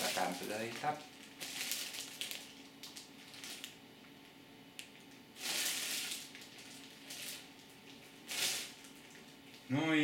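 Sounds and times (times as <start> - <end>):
plastic bag crinkling: 0.0 - 3.8, 5.0 - 9.6.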